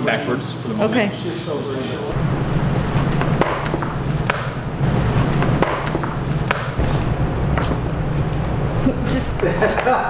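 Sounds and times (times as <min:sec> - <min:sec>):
steady low hum: 0:01.8 - 0:10.0.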